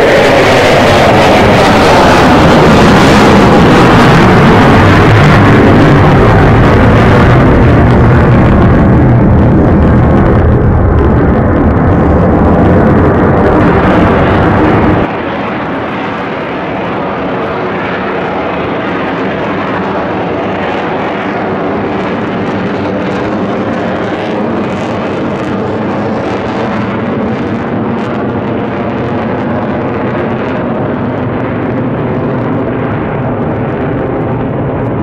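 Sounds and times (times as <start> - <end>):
jet engine noise: 0.0 - 35.0.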